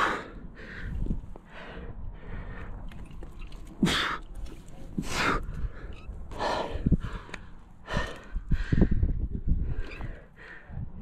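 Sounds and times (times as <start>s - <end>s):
man breathing heavily: 0.0s - 2.9s, 4.9s - 11.0s.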